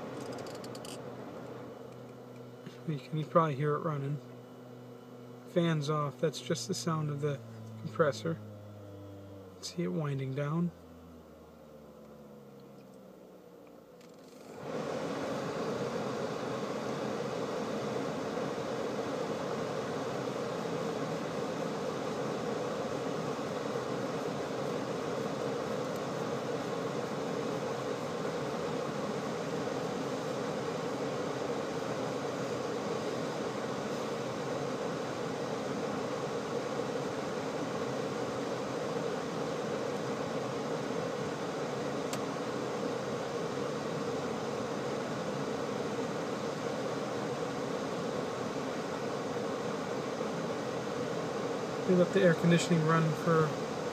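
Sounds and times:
faint hum: 0:00.0 - 0:53.9
steady rush of air from fan: 0:00.0 - 0:53.9.

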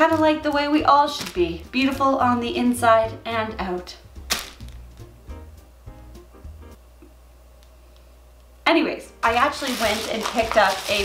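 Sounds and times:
faint background music: 0:00.0 - 0:07.0, 0:08.5 - 0:11.0.

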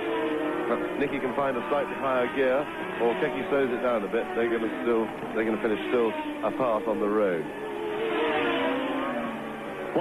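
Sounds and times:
racing car engine passing by: 0:00.0 - 0:10.0.

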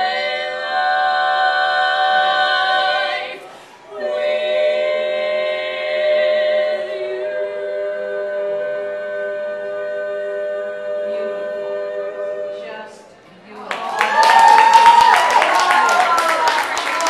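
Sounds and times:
women singing a cappella chord: 0:00.0 - 0:13.2.

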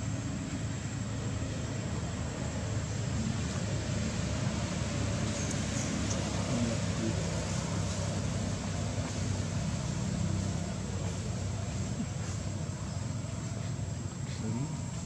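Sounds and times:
low engine drone with hiss: 0:00.0 - 0:15.0.

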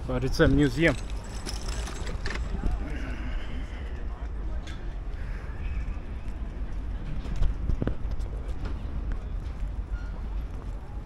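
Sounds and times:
footsteps on cobblestones: 0:05.9 - 0:11.0.

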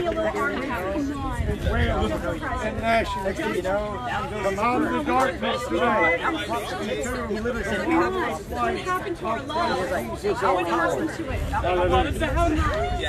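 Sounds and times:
people talking over one another: 0:00.0 - 0:13.0.

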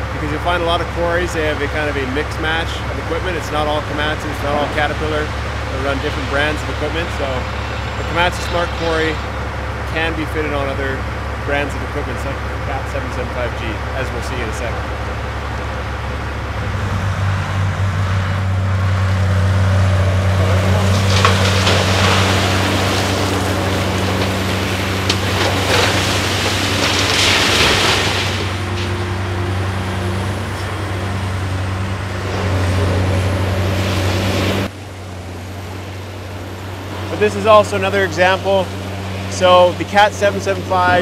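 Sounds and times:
heavy diesel engines running: 0:00.0 - 0:41.0
rock pouring into truck: 0:20.5 - 0:29.2.

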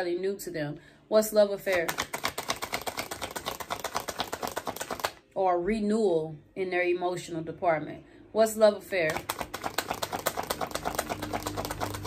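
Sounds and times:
cards being shuffled: 0:01.7 - 0:05.2, 0:09.1 - 0:12.0.

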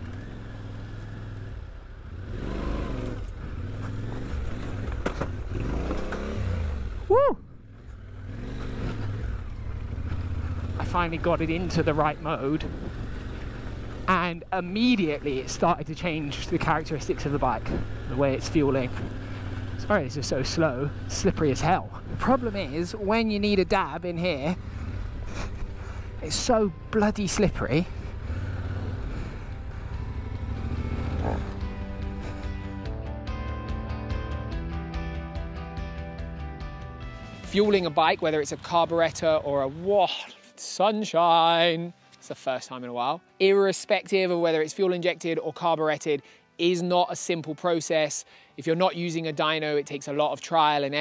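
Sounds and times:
motorcycle engine revving: 0:00.0 - 0:32.9.

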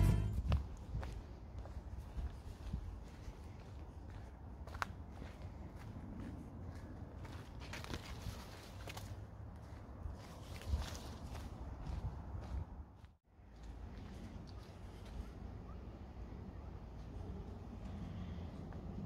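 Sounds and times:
footsteps on dirt path: 0:00.0 - 0:15.4.

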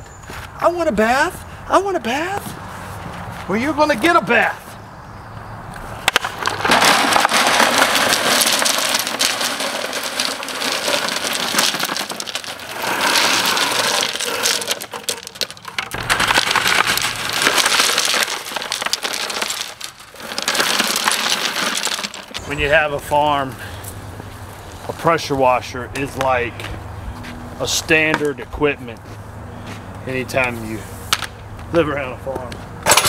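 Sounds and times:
small rocks clattering on wire mesh: 0:06.1 - 0:22.7.

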